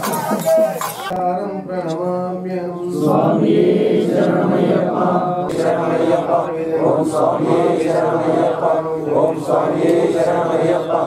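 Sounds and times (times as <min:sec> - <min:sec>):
men chanting mantras: 0:00.0 - 0:11.0.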